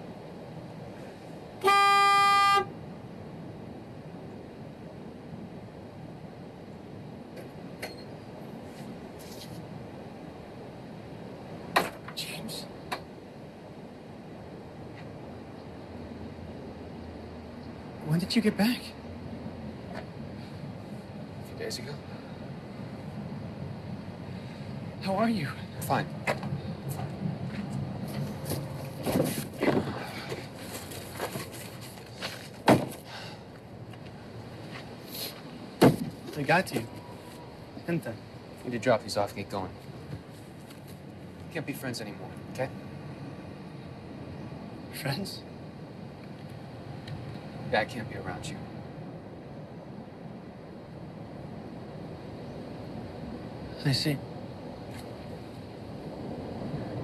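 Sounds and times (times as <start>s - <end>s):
faint outdoor background noise: 0.0s - 57.0s
vehicle horn beep: 1.6s - 2.7s
steady low rumble: 2.7s - 57.0s.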